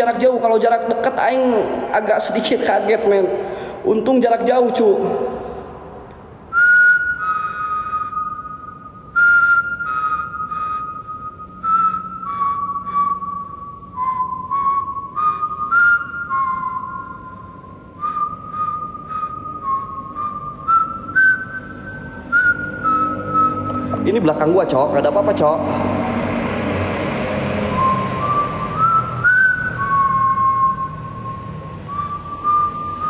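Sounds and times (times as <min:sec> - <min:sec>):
person whistling a tune: 0:06.5 - 0:25.7, 0:27.6 - 0:33.0.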